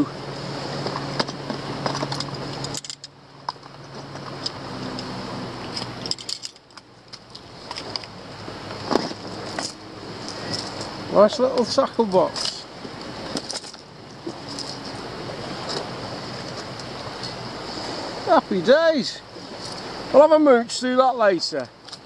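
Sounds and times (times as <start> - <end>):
steady background hiss: 0.0 - 22.0.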